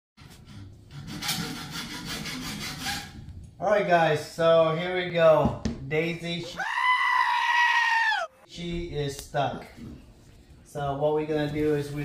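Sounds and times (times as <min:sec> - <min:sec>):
hacksaw cutting metal: 0:00.2 - 0:03.2.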